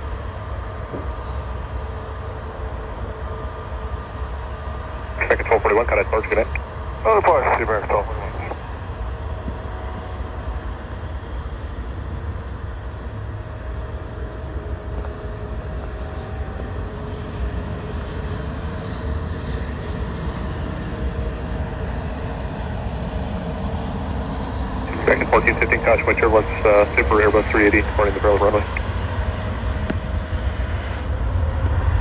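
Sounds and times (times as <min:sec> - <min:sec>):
distant jet engines rumbling: 0:00.0 - 0:32.0.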